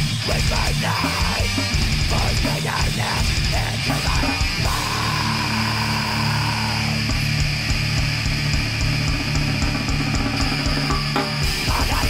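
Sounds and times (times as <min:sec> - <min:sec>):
death metal band playing: 0:00.0 - 0:12.0.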